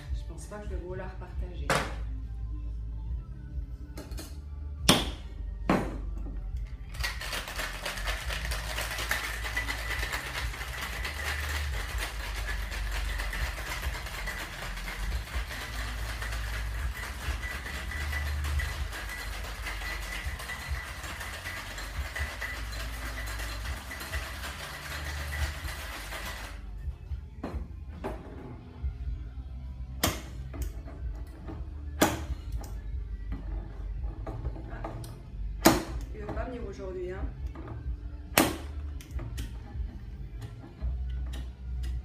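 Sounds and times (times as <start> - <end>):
background music: 0.0 - 42.0
ice rattling in shaker: 6.9 - 26.6.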